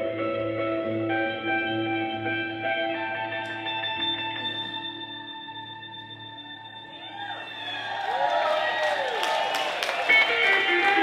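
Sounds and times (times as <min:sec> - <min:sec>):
electric guitar melody: 0:00.0 - 0:08.1, 0:09.0 - 0:11.0.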